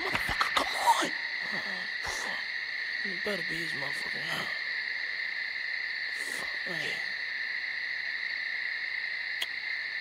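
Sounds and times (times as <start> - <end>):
high insect trill: 0.0 - 10.0.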